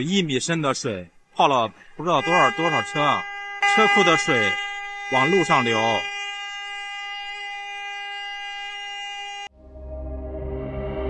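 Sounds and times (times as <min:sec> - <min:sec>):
steady pitched tone: 0:02.0 - 0:11.0
soft ambient music with drone: 0:09.5 - 0:11.0.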